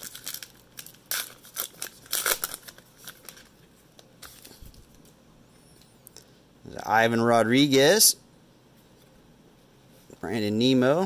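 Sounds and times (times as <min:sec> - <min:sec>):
foil wrapper tearing and crinkling: 0:00.0 - 0:03.5.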